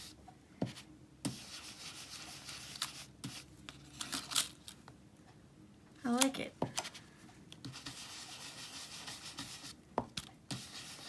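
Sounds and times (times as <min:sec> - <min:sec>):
brush scrubbing on card: 0:07.7 - 0:09.8, 0:10.5 - 0:11.0.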